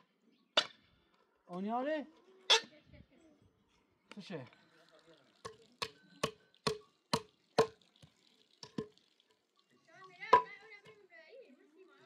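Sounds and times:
hand tool striking log post: 5.4s - 7.8s.

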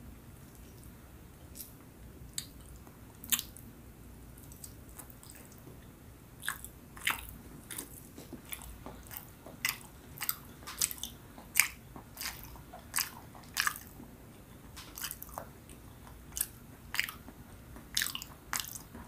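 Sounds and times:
close-up chewing: 0.4s - 3.7s, 4.3s - 19.0s
mouth clicks and smacks: 1.5s - 3.7s, 6.4s - 19.0s.

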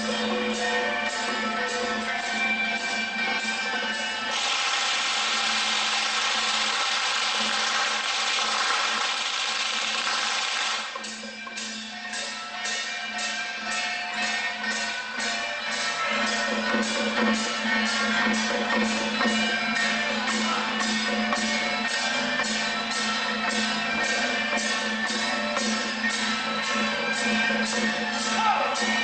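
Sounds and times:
percussion band of gongs and cymbals: 0.0s - 29.0s.

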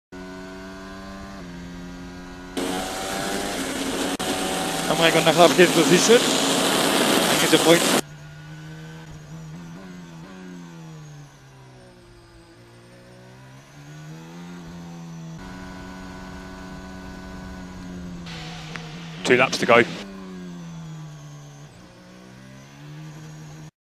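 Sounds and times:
racing car engine at speed: 0.1s - 23.7s
road noise: 0.2s - 23.7s
rushing wind: 15.4s - 20.0s.

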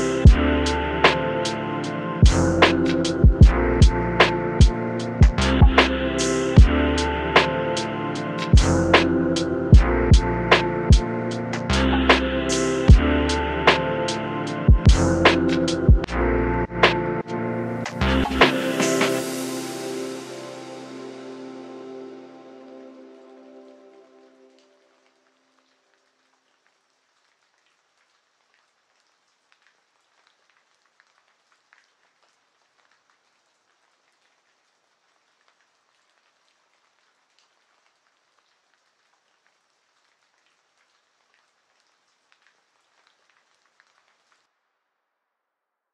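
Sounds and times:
lo-fi music track: 0.0s - 25.2s
soft rain hiss: 0.0s - 45.2s
rain drop ticks: 14.5s - 16.2s, 24.6s - 44.5s.

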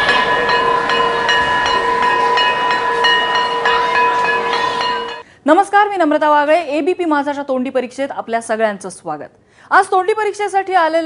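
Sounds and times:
steady held horn tone: 0.0s - 5.2s.

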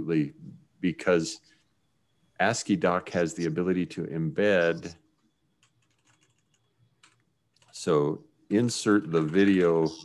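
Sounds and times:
faint keyboard typing: 4.8s - 8.0s, 9.0s - 10.0s.

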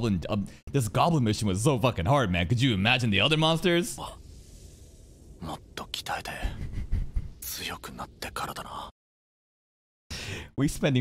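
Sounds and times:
dull low bumps: 2.7s - 7.5s.

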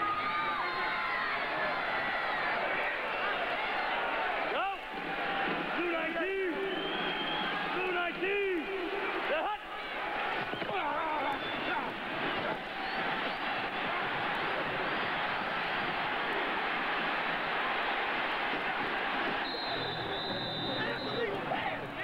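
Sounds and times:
players shouting: 0.0s - 22.0s
stadium crowd noise: 0.0s - 22.0s
referee's whistle: 6.4s - 7.7s, 10.4s - 13.5s, 19.3s - 21.4s.

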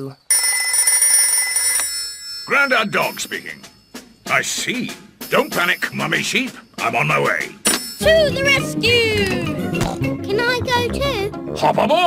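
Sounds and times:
cartoon telephone ringing: 0.3s - 3.8s, 7.6s - 9.0s.

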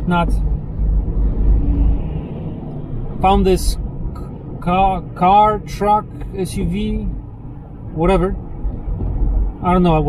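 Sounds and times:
car cabin road noise: 0.0s - 10.0s.

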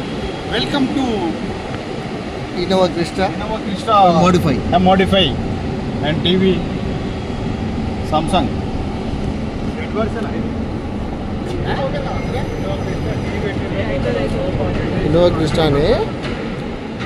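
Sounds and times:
voices talking: 0.0s - 16.3s
steady background noise: 0.0s - 17.0s.

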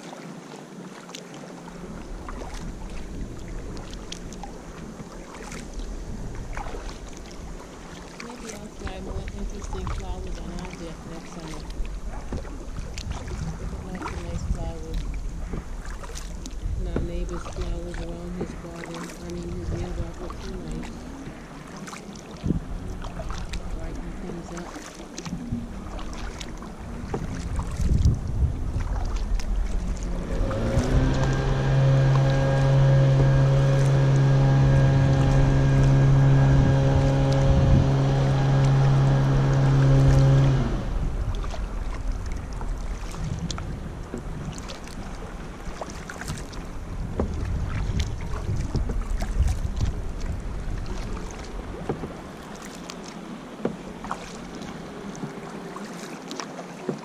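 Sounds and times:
kayak paddle splashing: 0.0s - 57.0s
water lapping at hull: 0.0s - 57.0s
wind on microphone: 1.7s - 52.7s.

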